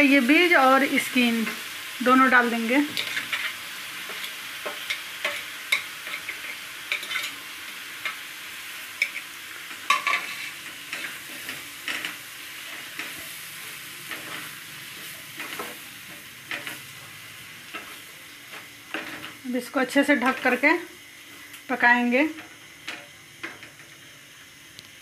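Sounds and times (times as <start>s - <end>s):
frying hiss: 0.0s - 25.0s
spatula scraping and tapping pan: 2.9s - 7.4s, 9.0s - 13.4s.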